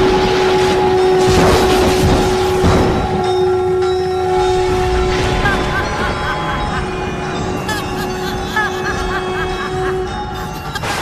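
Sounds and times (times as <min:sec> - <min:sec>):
steady drone with ringing overtones: 0:00.0 - 0:11.0.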